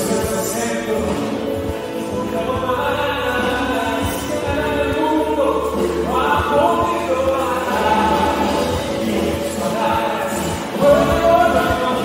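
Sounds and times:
acoustic guitar: 0.0s - 12.0s
man singing into a microphone: 0.0s - 12.0s
steady bass: 0.0s - 12.0s
voices singing along: 0.0s - 12.0s.

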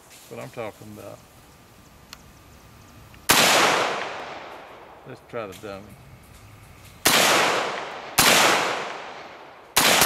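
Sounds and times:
rifle gunshot with echo: 3.3s - 4.8s, 7.0s - 10.0s.

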